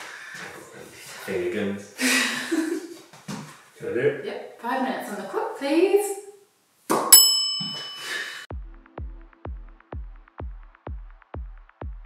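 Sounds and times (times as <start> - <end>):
bell ding: 7.1 - 8.4.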